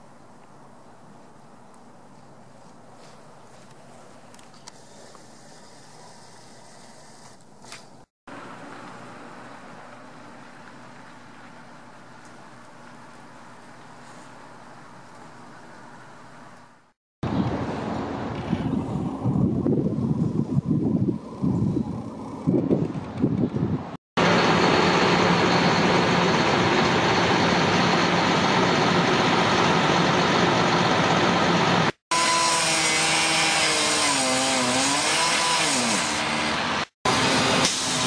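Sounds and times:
truck engine running: 22.4s - 32.0s
cut-off saw cutting steel: 31.5s - 38.0s.

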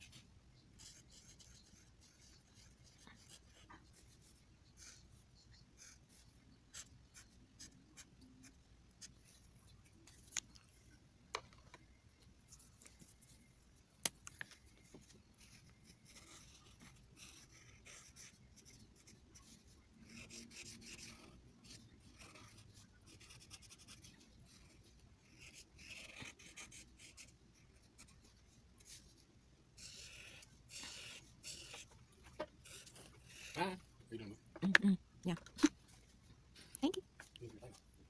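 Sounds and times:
marker scratching on paper: 0.8s - 9.5s, 14.9s - 29.1s, 29.8s - 33.7s.

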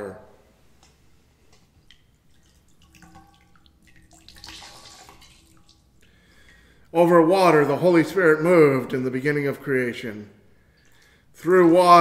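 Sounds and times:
water dripping into metal bowl: 1.5s - 6.7s.

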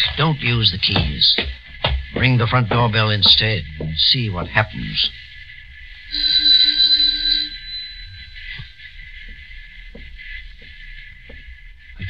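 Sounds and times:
faint footsteps: 0.0s - 6.4s, 7.2s - 12.0s
recording hiss: 0.0s - 12.0s
doorbell ringing: 6.1s - 8.4s.

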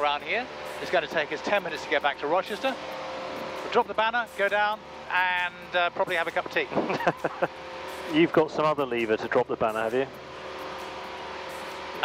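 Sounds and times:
propeller aircraft engine drone: 0.0s - 12.0s.

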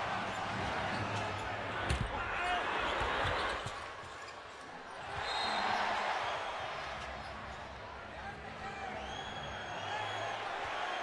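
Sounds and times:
arena crowd chatter: 0.0s - 11.0s.

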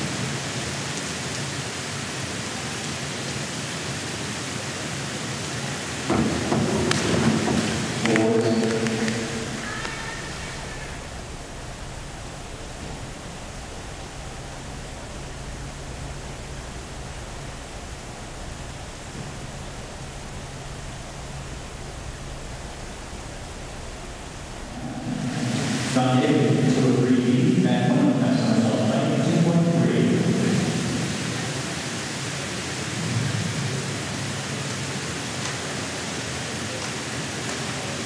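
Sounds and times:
low hum: 6.0s - 31.5s
echoing voice: 6.1s - 15.4s, 24.4s - 31.0s
air handling rushing noise: 6.1s - 27.8s.

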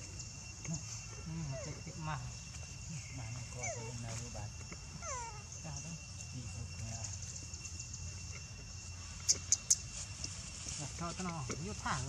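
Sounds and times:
monkey distress cries: 5.0s - 5.7s.

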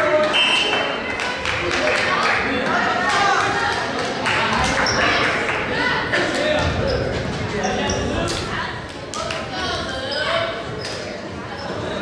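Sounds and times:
echoing voices and chatter: 0.0s - 12.0s.

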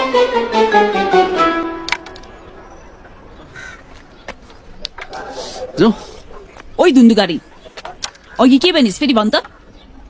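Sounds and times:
crow cawing: 2.7s - 4.1s.

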